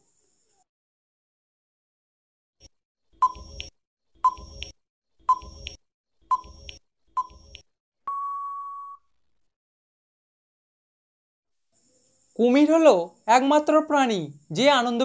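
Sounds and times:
long steady beep: 6.3 - 9.0
short beeps: 8.1 - 9.1.

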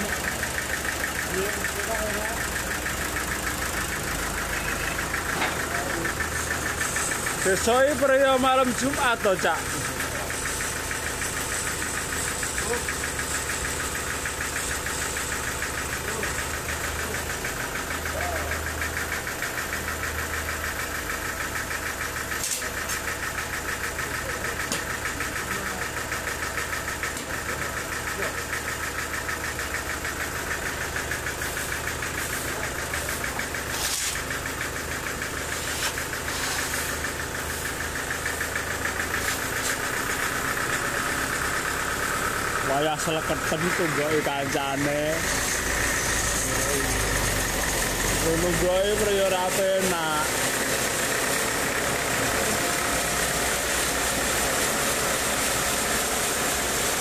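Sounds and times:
sawmill running: 0.0 - 57.0.

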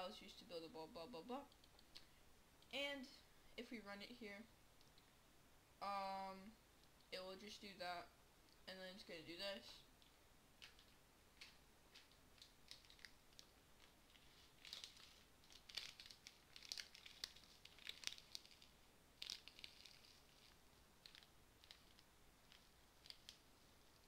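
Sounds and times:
faint crackling clicks: 1.5 - 2.8, 4.8 - 5.2, 10.0 - 24.0.

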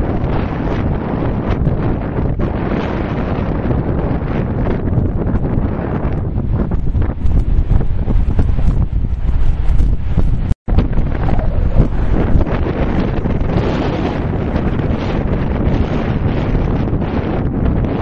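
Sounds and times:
strong wind buffeting microphone: 0.0 - 18.0.

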